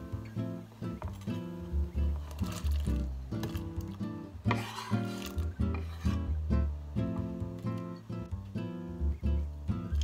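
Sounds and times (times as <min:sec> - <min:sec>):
guitar background music: 0:00.0 - 0:10.0
knife scraping cutting board: 0:04.4 - 0:06.4.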